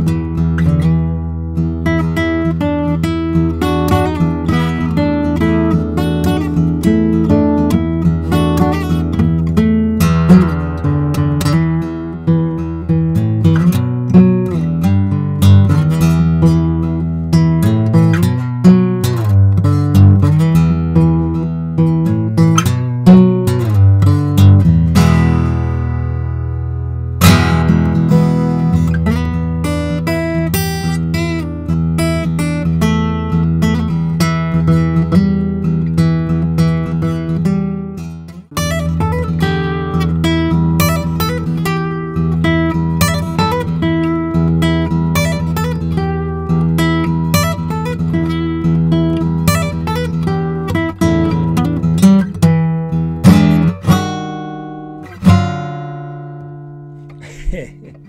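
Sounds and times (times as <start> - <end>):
acoustic guitar playing: 0.0 - 58.0.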